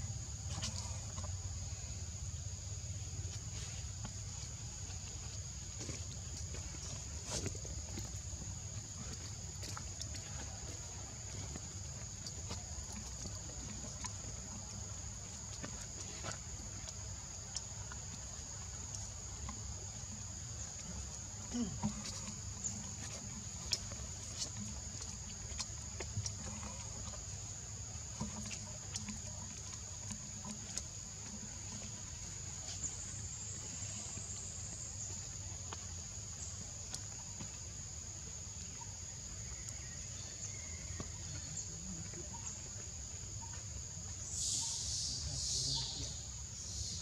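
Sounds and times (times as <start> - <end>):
insects droning: 0.0 - 47.0.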